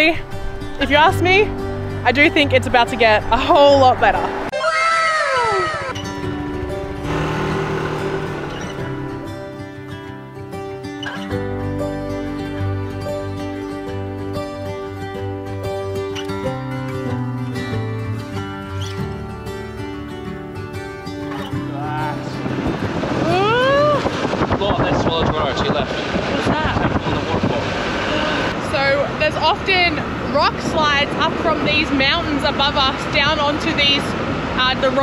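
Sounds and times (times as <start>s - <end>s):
gentle instrumental music: 0.0s - 4.6s, 5.9s - 24.5s
wind and road noise from scooter: 5.7s - 9.4s, 21.4s - 35.0s.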